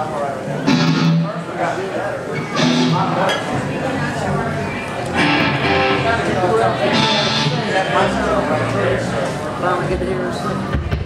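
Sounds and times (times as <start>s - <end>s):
rock band electric guitars: 0.6s - 1.6s, 2.4s - 3.9s, 4.9s - 9.4s.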